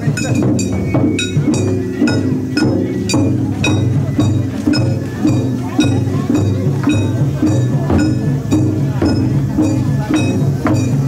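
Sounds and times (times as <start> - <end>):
crowd voices: 0.0 - 11.0
drumming: 0.0 - 11.0
small hand gong clinking: 0.0 - 11.0.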